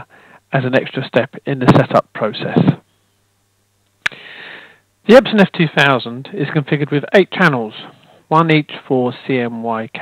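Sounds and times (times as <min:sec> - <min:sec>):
mouth click: 0:03.9 - 0:04.2
short breath in: 0:04.1 - 0:04.8.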